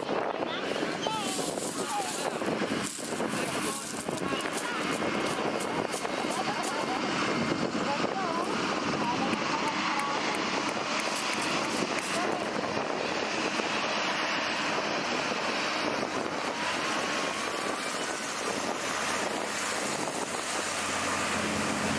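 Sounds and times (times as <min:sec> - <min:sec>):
hovercraft propeller noise: 0:00.0 - 0:21.9
air and spray blasting: 0:01.0 - 0:07.0.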